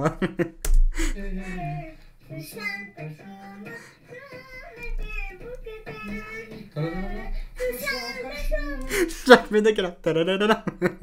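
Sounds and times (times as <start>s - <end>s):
boy singing: 1.2s - 9.3s.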